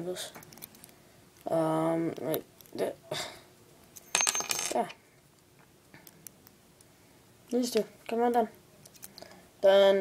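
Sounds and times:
metal puzzle pieces clinking: 4.0 - 5.0.

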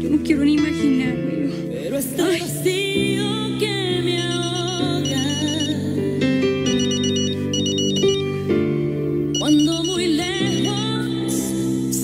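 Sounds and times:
soft ballad: 0.0 - 12.0
phone beeping ringtone: 4.2 - 6.0, 6.6 - 8.5, 9.3 - 11.4
person singing: 9.4 - 11.7.

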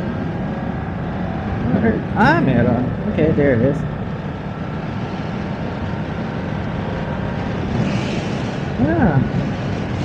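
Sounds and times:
wind and road noise: 0.0 - 10.0.

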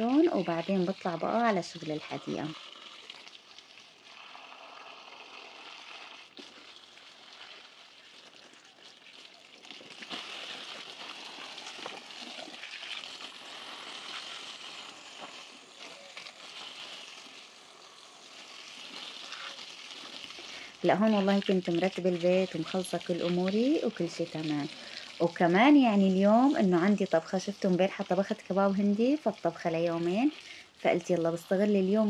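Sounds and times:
garden hose spraying water: 0.0 - 32.0.

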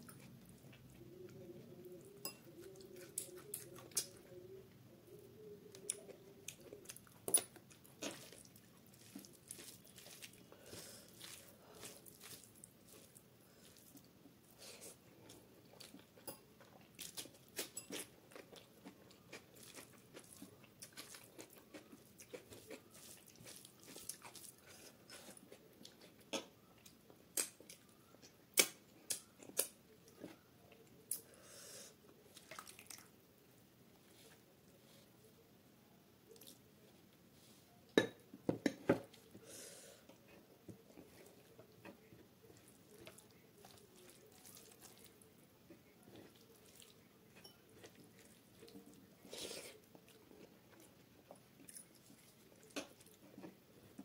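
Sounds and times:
close chewing and mouth sounds: 0.0 - 35.4, 36.2 - 54.0
sharp wet clicks and smacks: 27.3 - 27.8, 28.5 - 29.8.

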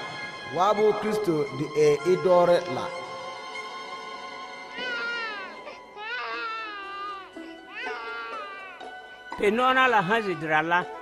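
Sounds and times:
soft background music: 0.0 - 11.0
newborn baby crying: 4.7 - 9.1.

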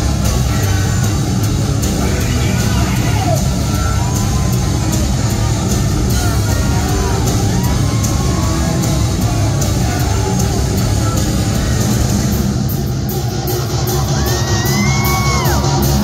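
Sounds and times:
heavy rock band playing live: 0.0 - 16.0.

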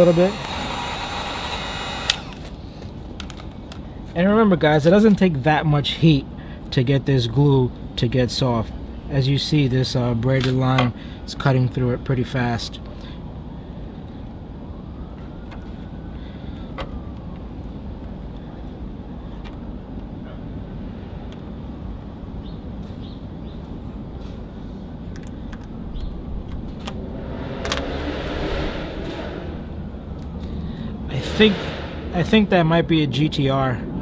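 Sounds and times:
low outdoor rumble: 0.0 - 34.0.

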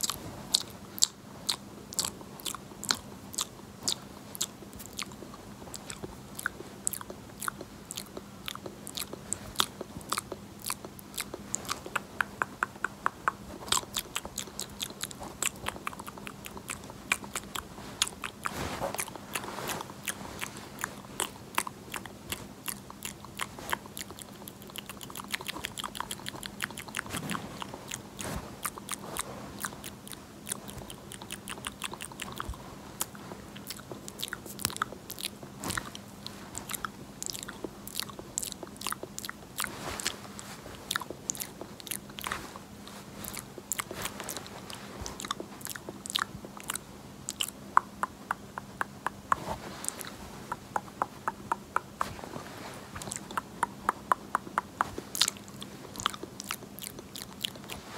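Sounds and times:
faint steady hum: 0.0 - 57.9
crisp clicks and taps: 47.7 - 52.2, 53.0 - 55.1.

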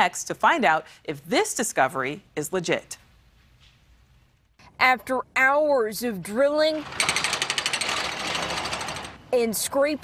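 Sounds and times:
hydraulic breaker hammering concrete: 6.8 - 9.2.

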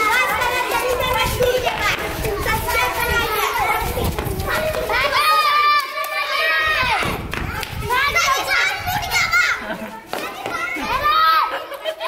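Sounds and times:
children shouting: 0.0 - 12.0.

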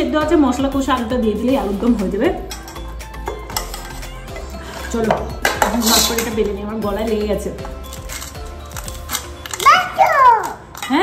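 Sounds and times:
metal bowl clinking and scraping: 1.6 - 11.0.

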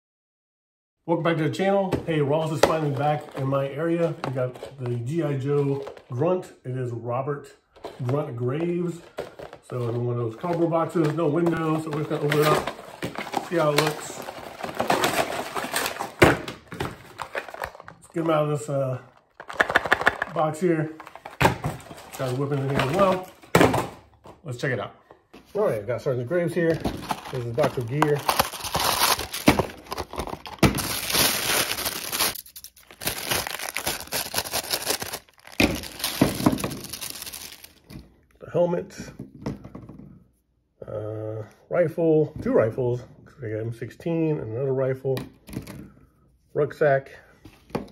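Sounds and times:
packaging wrap crinkling: 11.6 - 18.4, 26.8 - 37.9
cardboard box tearing: 27.0 - 37.7.

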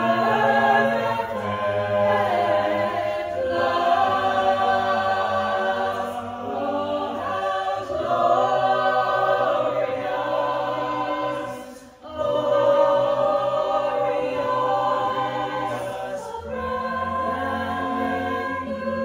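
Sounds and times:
a cappella choir singing: 0.0 - 19.0.

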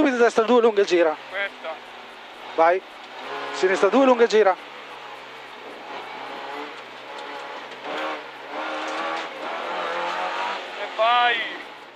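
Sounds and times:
rally car engine revving: 0.0 - 11.9.

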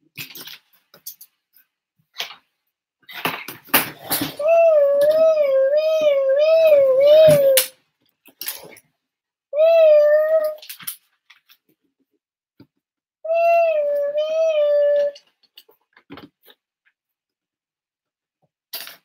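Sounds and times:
child making siren noise: 4.4 - 7.7, 9.6 - 10.6, 13.3 - 15.2.

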